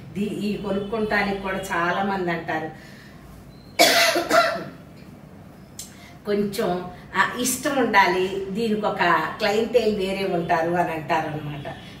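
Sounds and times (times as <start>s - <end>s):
woman coughing: 3.8s - 4.8s.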